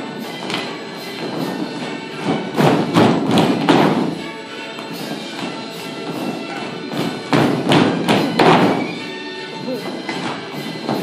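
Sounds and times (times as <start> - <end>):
dance music: 0.0 - 11.0
shoes stamping on wooden floor: 0.4 - 9.0, 9.8 - 11.0.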